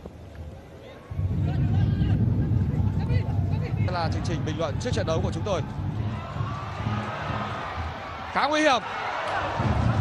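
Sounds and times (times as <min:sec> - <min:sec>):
stadium crowd din: 0:00.1 - 0:10.0.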